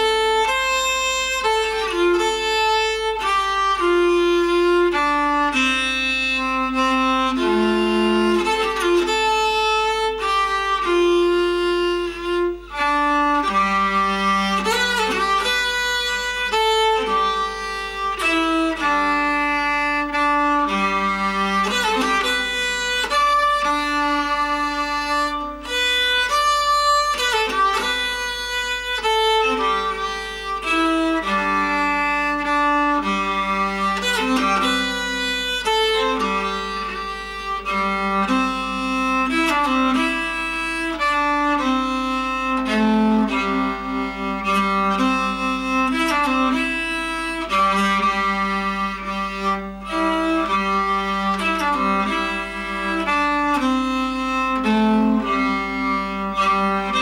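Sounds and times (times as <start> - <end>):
bowed keyed fiddle playing: 0.0 - 57.0.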